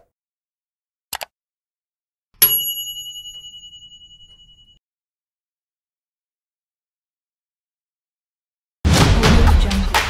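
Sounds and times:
bright bell ding: 0:02.4 - 0:04.8.

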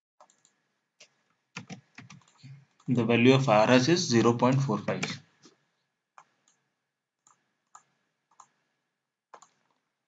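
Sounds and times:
keyboard and mouse clicks: 0:00.2 - 0:03.0, 0:04.2 - 0:05.2, 0:06.2 - 0:06.6, 0:07.2 - 0:08.6, 0:09.3 - 0:09.9.

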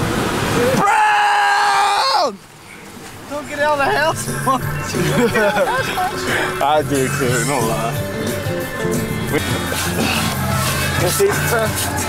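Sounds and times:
man yelling: 0:00.6 - 0:02.4
people laughing and shouting: 0:04.3 - 0:12.0.

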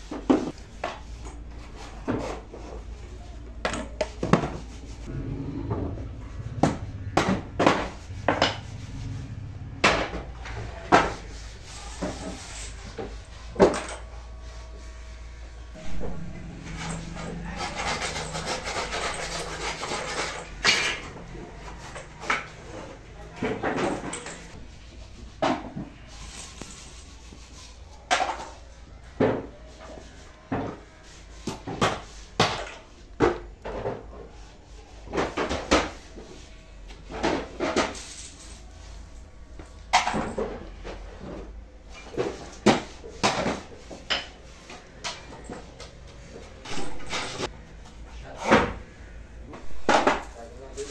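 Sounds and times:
low steady hum: 0:12.8 - 0:26.7
wood being rubbed by hand: 0:14.2 - 0:20.6
hard objects clattering: 0:15.8 - 0:24.6.

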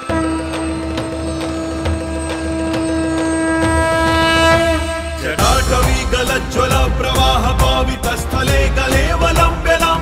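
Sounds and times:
long horn-like note: 0:00.0 - 0:05.4.

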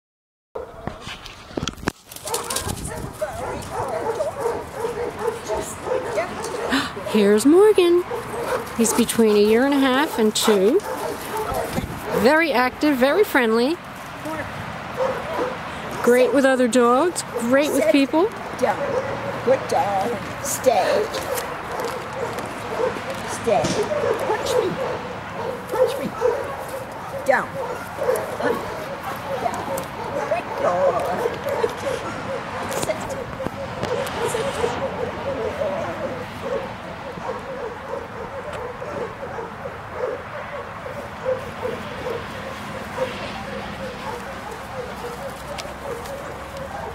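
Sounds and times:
dogs whining and yipping: 0:02.2 - 0:07.2, 0:08.0 - 0:12.3, 0:17.2 - 0:20.2, 0:21.2 - 0:46.9.

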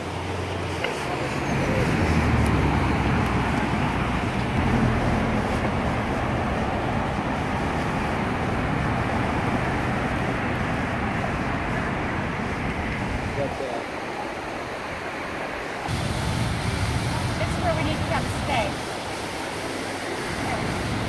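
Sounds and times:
road traffic passing: 0:00.0 - 0:21.0.

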